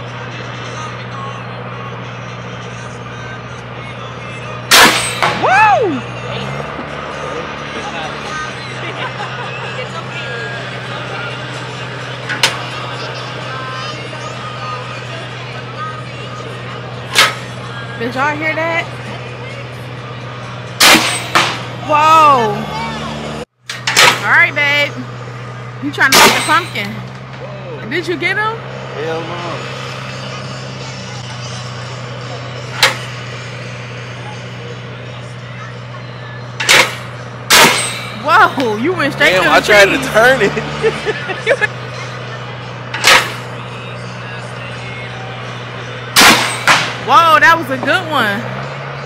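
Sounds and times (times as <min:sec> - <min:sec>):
compressed-air cannon blasts: 0:04.7 - 0:05.2, 0:20.8 - 0:21.6, 0:46.2 - 0:47.0.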